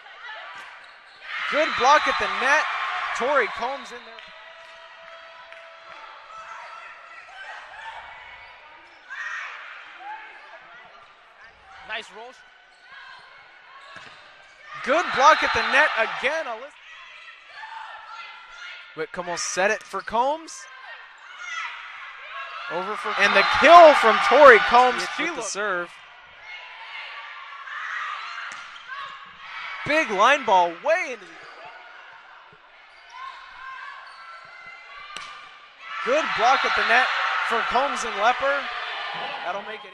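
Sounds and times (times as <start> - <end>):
sneakers squeaking on floor: 0.5 - 2.5, 10.3 - 16.0, 31.2 - 34.9.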